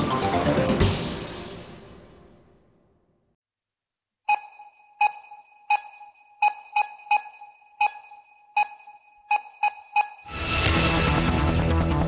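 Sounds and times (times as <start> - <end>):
sharp electronic pings: 4.3 - 10.3.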